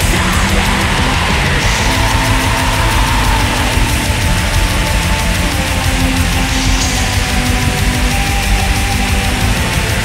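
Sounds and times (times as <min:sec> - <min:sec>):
black metal music: 0:00.0 - 0:10.0.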